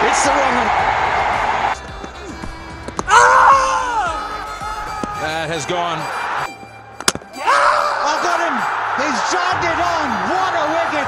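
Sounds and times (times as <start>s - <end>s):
crowd roar: 0.0s - 1.8s, 7.4s - 11.0s.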